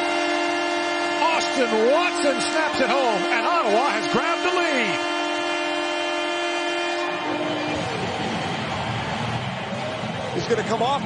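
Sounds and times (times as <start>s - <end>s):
goal horn: 0.0s - 9.6s
arena noise: 7.1s - 11.0s.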